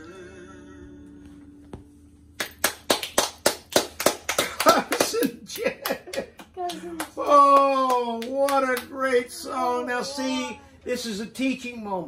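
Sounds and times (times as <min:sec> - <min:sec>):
hands clapping: 0:02.4 - 0:09.0
laughter: 0:04.4 - 0:06.6.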